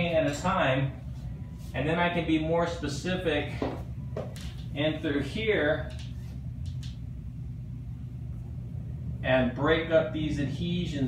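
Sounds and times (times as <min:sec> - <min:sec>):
low background rumble: 0:00.0 - 0:11.0.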